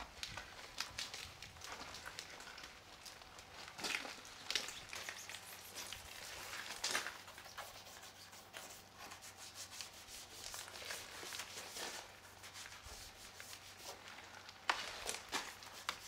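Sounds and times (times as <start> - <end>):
hand scrubbing wet car body: 7.2 - 14.0.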